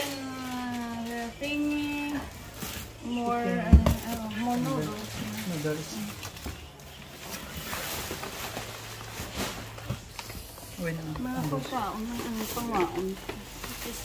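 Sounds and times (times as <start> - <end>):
plastic and cardboard rustling: 0.0 - 14.0.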